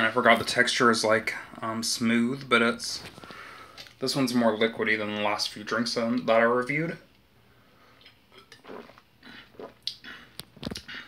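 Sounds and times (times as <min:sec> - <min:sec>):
man swallowing a drink: 0:08.0 - 0:11.0.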